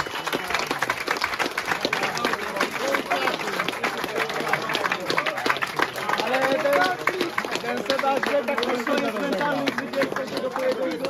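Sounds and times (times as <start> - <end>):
audience applauding: 0.0 - 11.0.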